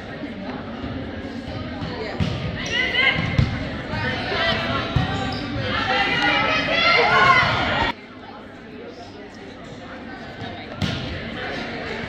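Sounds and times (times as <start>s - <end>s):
excited voices: 4.0s - 8.0s.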